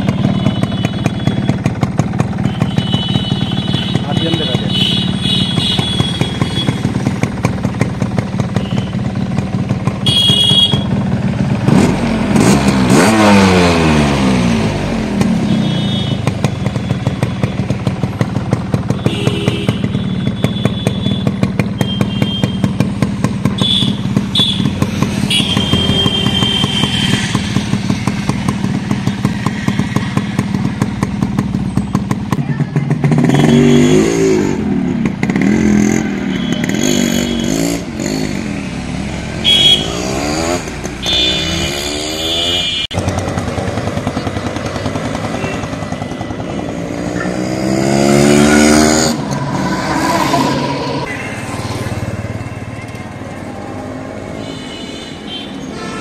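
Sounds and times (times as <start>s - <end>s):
motorcycle engine idling: 0.0s - 12.2s, 14.6s - 33.4s, 42.9s - 46.8s
motorcycle engine revving: 0.0s - 54.6s
motorcycle accelerating away: 11.0s - 15.6s, 22.7s - 52.4s.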